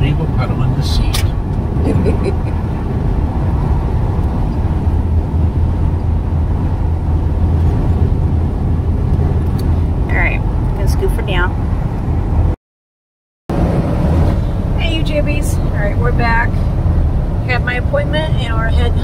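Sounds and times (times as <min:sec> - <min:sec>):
vehicle engine drone: 0:00.0 - 0:12.6, 0:13.5 - 0:19.0.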